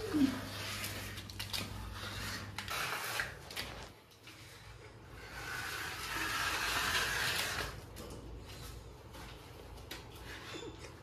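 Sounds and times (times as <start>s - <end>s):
hand tool scraping plaster wall: 0.0s - 11.0s.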